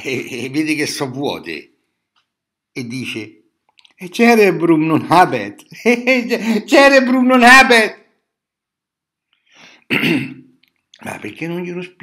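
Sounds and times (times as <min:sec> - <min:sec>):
man coughing: 0:09.9 - 0:10.5.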